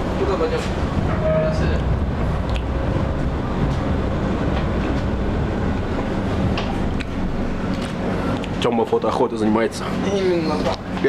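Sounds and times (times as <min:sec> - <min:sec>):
tram interior rumble: 0:00.0 - 0:11.0.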